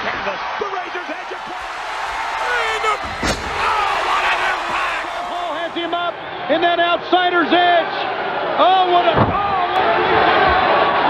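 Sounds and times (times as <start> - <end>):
arena crowd noise: 0.0 - 11.0
people shouting: 0.9 - 6.1
body slammed onto ring: 3.0 - 4.6.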